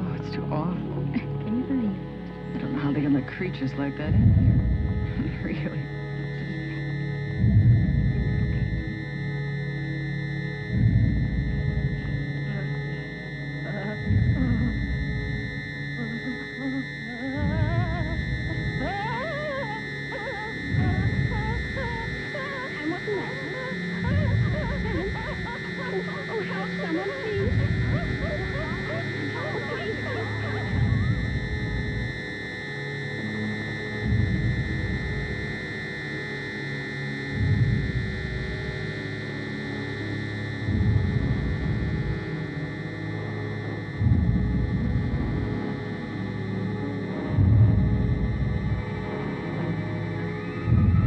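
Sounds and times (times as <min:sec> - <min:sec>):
deep pulse: 0:00.0 - 0:51.0
eerie electronic score: 0:00.0 - 0:51.0
high drone: 0:00.0 - 0:51.0
wavering whimper-like cries: 0:16.0 - 0:31.4.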